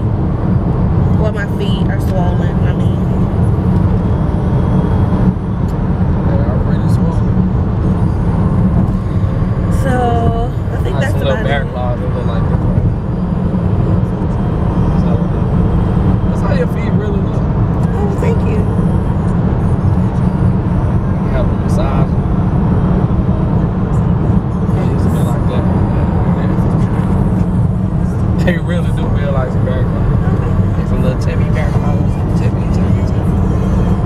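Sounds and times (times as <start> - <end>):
car road and engine rumble: 0.0 - 34.0
faint voice: 9.7 - 12.9, 23.4 - 27.4.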